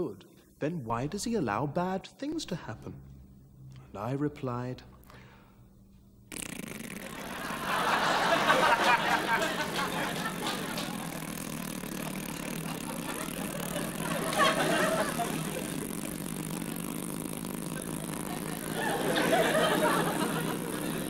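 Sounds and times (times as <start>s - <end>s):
blown raspberry: 6.3s - 21.0s
audience laughter: 7.2s - 11.2s, 12.4s - 16.0s, 17.8s - 21.0s.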